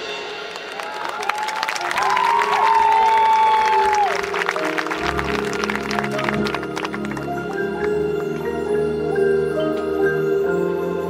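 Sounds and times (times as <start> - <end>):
audience applauding and calling: 0.2 - 9.4
marching band sustained chord: 4.1 - 11.0.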